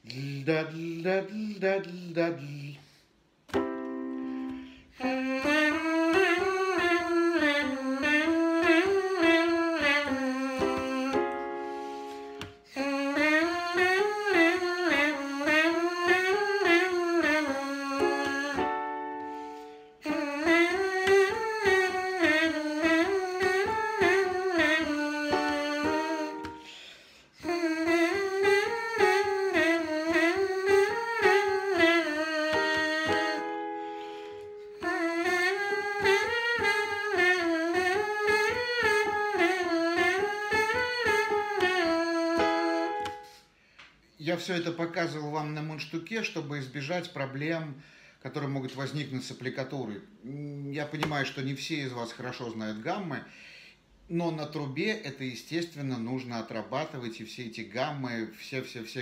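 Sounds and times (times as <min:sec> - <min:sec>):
trumpet mouthpiece buzzing: 0:05.0 - 0:11.8, 0:12.4 - 0:43.4.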